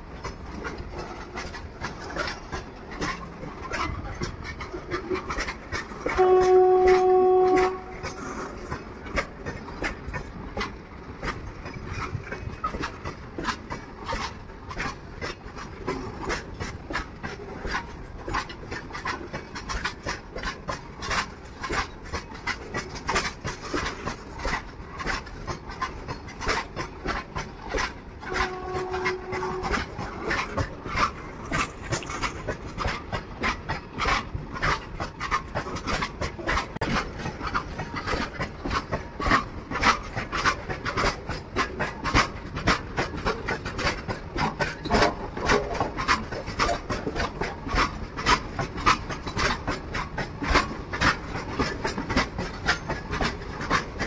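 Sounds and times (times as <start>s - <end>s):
freight train wheels rumbling on rail: 0.0s - 54.0s
wheels clicking over track joints: 0.0s - 54.0s.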